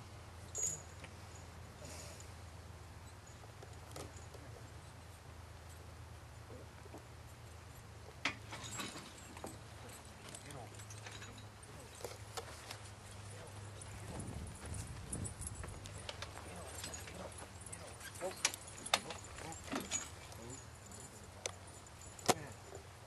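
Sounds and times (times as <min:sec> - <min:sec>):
low steady hum: 0:00.0 - 0:23.0
hoof clops: 0:06.8 - 0:22.9.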